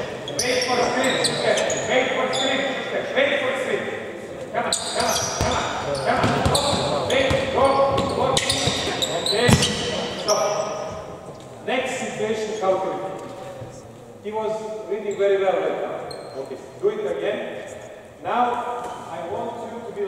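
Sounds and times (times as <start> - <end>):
voices calling out: 0.0 - 11.6
basketball bouncing on hardwood: 6.2 - 8.9, 9.5 - 9.9.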